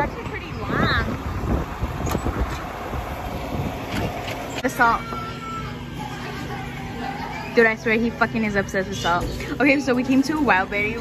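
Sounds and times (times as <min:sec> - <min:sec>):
wind buffeting microphone: 0:00.0 - 0:04.2
ride train rumbling: 0:00.0 - 0:11.0.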